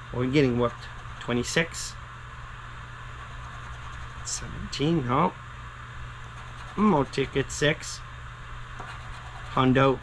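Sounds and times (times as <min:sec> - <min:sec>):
scratching lottery ticket coating: 0:00.4 - 0:01.8, 0:03.2 - 0:04.5, 0:06.2 - 0:07.5, 0:08.8 - 0:09.9.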